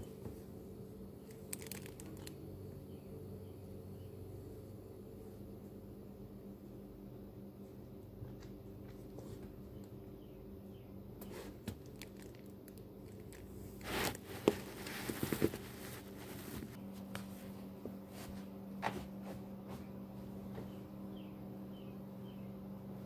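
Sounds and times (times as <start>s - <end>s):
air conditioner hum: 0.0s - 23.0s
rustling and clicking handling noises: 1.2s - 2.4s, 11.2s - 17.3s.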